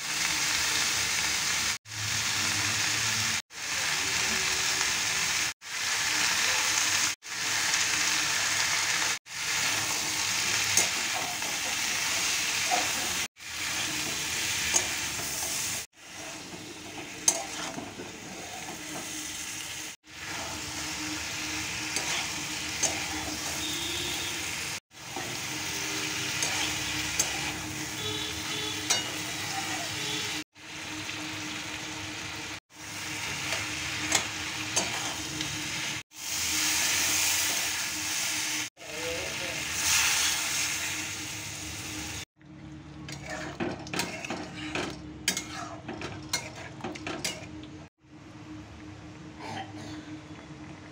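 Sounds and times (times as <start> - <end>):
vegetables sizzling in oil: 0.0 - 42.3
metal spatula scraping pan: 9.6 - 30.4, 33.2 - 35.5, 43.1 - 47.6.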